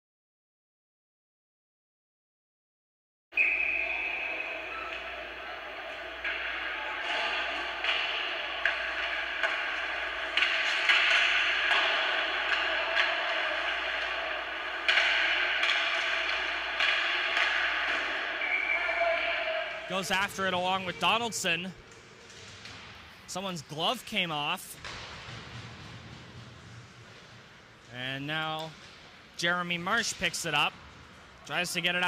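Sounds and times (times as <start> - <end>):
skates on ice: 3.4 - 21.1
hockey sticks and puck clacking: 3.4 - 32.0
voices in a rink: 3.4 - 32.0.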